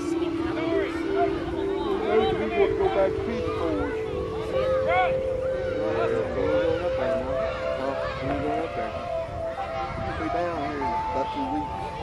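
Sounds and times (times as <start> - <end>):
spectators talking: 0.0 - 12.0.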